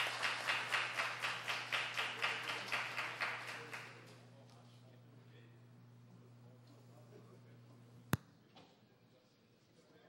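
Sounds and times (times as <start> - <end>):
crowd clapping in unison: 0.0 - 4.1.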